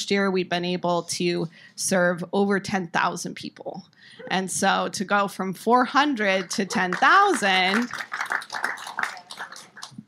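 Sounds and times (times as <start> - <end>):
audience applauding: 6.3 - 10.0.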